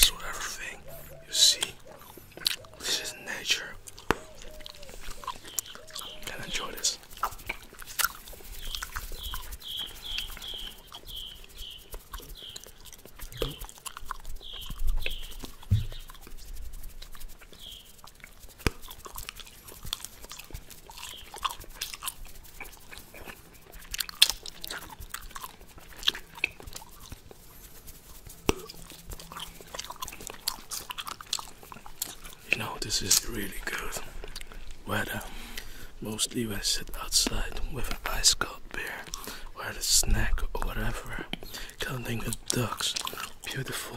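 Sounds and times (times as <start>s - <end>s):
gum chewing mouth sounds: 0.0s - 43.9s.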